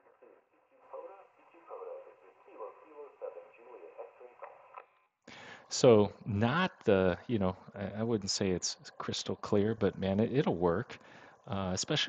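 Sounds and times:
man's voice through small speaker: 0:05.5 - 0:12.0.

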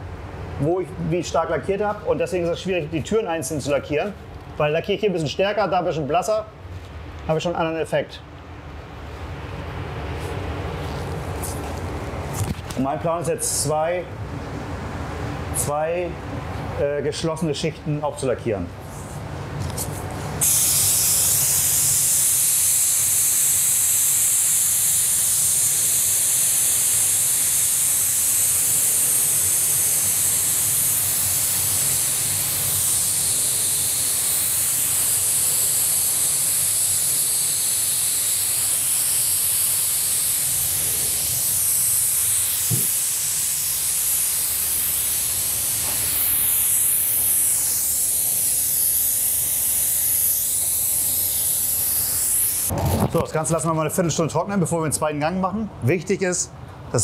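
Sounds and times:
paint spray gun hissing: 0:20.4 - 0:52.7.

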